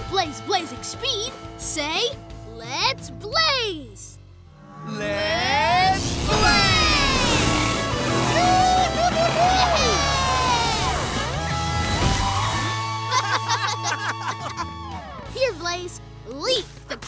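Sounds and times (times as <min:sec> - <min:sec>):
upbeat music: 0:04.8 - 0:15.7
rising whoosh: 0:05.1 - 0:12.7
excited shouts: 0:05.4 - 0:15.6
sweeping zooms: 0:05.6 - 0:11.4.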